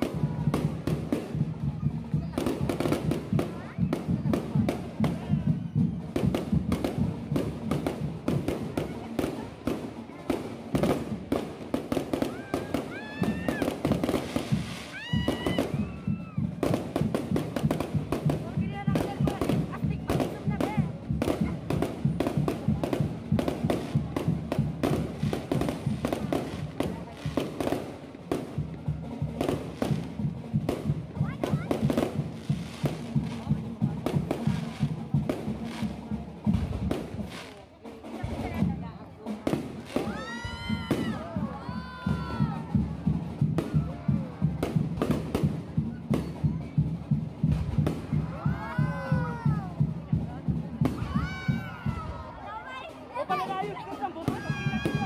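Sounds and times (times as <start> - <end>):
fireworks crackling and popping: 0.0 - 55.0.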